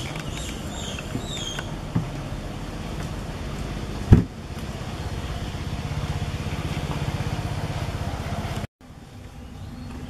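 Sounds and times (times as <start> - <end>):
engine idling: 0.0 - 10.0
loud low thump: 4.1 - 4.4.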